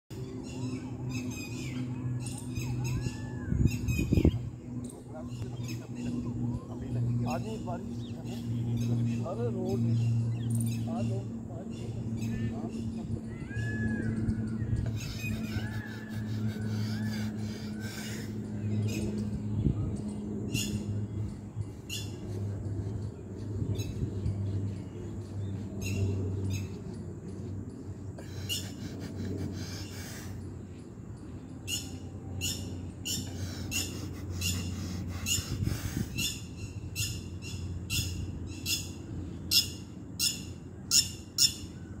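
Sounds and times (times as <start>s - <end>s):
low steady rumble: 0.1s - 42.0s
steady low hum: 0.1s - 42.0s.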